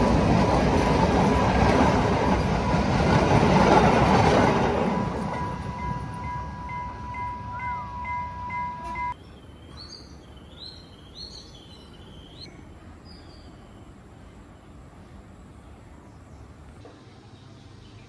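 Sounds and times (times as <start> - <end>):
train carriages rumbling: 0.0 - 9.2
crossing alarm ringing with tick: 5.1 - 9.2
birds chirping: 5.2 - 12.5.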